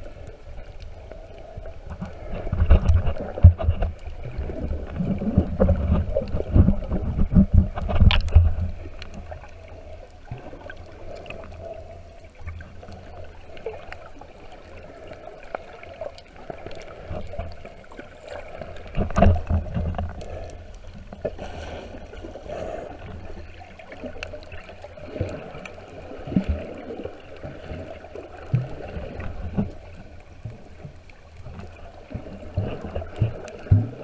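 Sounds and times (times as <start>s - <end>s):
underwater water sloshing: 0.0s - 34.0s
low bumps and rumbles: 1.6s - 9.4s.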